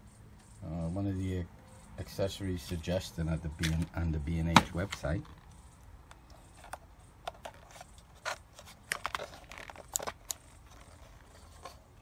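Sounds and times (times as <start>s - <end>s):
plastic camera clicks and scrapes: 4.5s - 12.0s.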